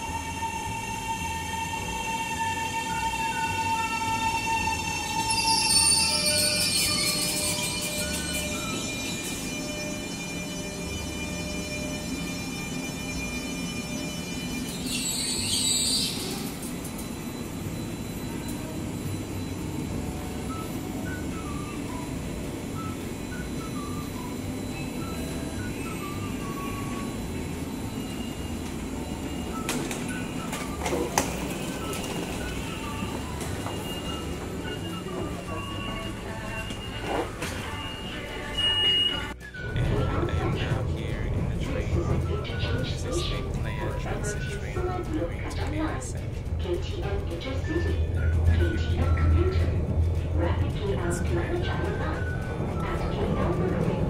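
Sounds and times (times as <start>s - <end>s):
electric train rumbling and humming: 0.0s - 54.0s
music: 0.0s - 54.0s.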